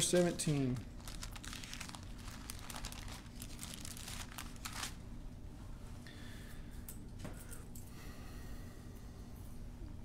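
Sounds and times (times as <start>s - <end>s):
paper pages rustling: 0.2s - 5.0s.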